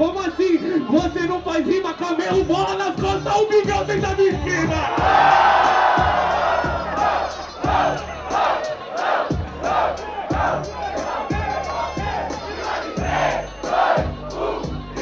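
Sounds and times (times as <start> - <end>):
thumping bass drum beat: 2.3 - 8.6, 9.3 - 15.0
crowd shouting in rhythm: 4.6 - 15.0.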